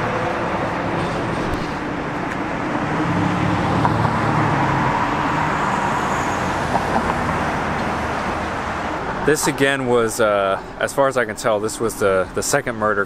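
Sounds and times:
steady road noise: 0.0s - 13.0s.

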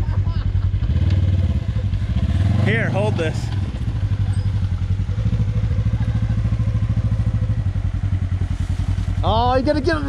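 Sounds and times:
utility vehicle engine idling: 0.0s - 10.0s.

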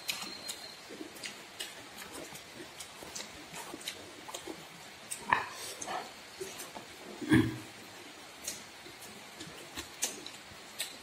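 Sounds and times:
mouth chewing clicks and smacks: 0.0s - 6.8s, 8.3s - 11.0s.

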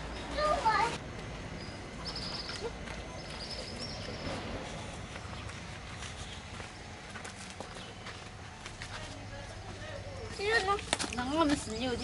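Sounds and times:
footsteps on leaves and twigs: 2.2s - 12.0s.

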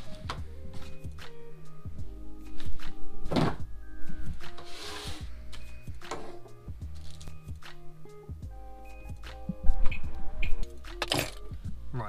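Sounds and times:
background music with sustained tones: 0.0s - 12.0s
cardboard box thunk: 3.3s - 3.6s.

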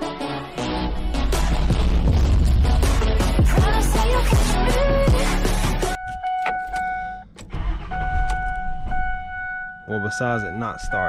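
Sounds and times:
intro music: 0.0s - 6.0s
car dashboard warning tone: 5.9s - 11.0s
keys clicking at ignition: 6.0s - 7.6s.

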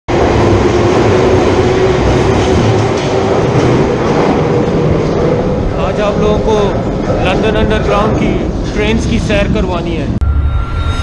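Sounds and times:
train rumbling: 0.1s - 11.0s
train whine rising in pitch: 10.2s - 11.0s.

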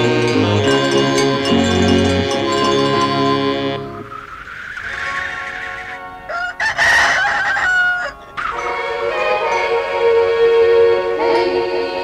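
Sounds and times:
music: 0.0s - 12.0s
loud crowing call: 4.3s - 8.6s.

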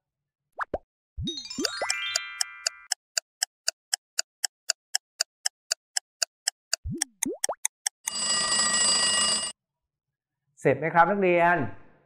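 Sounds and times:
clock ticking: 1.6s - 8.3s
alarm ringing: 8.0s - 9.6s.

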